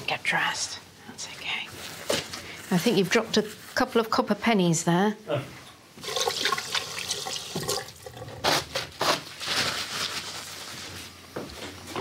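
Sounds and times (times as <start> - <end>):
tap water running into sink: 6.0 - 8.4.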